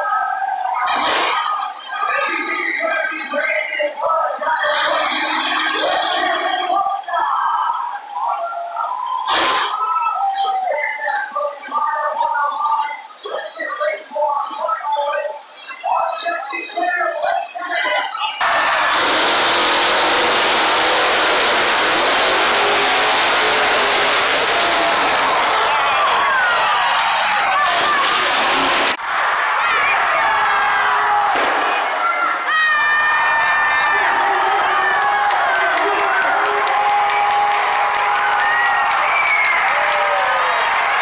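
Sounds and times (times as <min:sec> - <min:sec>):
indistinct voices: 0:00.0 - 0:39.1
monster truck engines revving: 0:00.8 - 0:06.8, 0:18.2 - 0:29.0
loud burst of noise: 0:09.2 - 0:09.8, 0:18.4 - 0:30.2.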